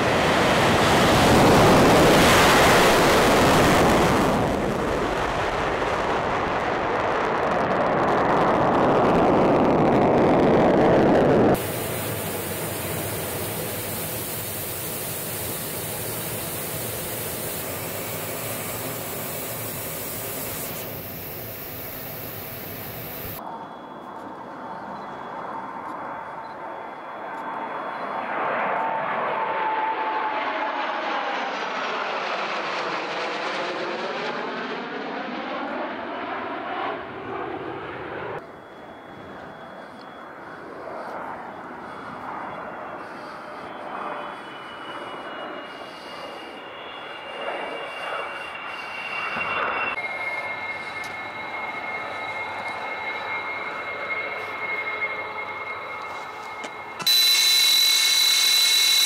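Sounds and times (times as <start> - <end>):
jet fighters flying past: 0.0 - 59.0
jet whine with falling whistle: 0.0 - 59.0
cockpit air noise hiss: 11.6 - 23.6, 38.4 - 49.3.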